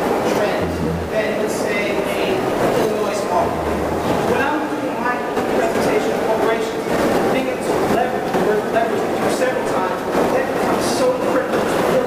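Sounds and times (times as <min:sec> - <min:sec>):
person speaking in echoing room: 0:00.4 - 0:12.0.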